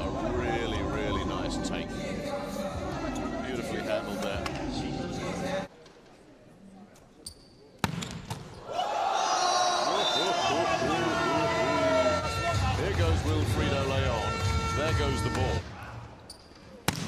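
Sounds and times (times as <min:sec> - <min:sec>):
volleyball smack: 0:07.8 - 0:08.5
crowd cheering: 0:08.6 - 0:14.2.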